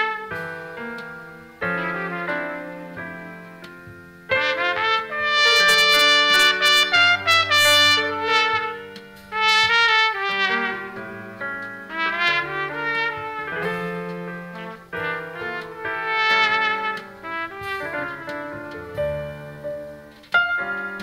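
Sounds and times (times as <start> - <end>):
low accompaniment: 0.0 - 21.0
trumpet playing slow melody: 0.0 - 21.0.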